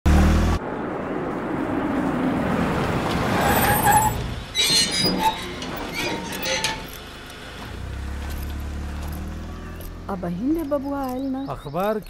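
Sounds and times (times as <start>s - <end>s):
car driving and slowing: 0.1s - 12.0s
brakes squealing: 2.0s - 12.0s.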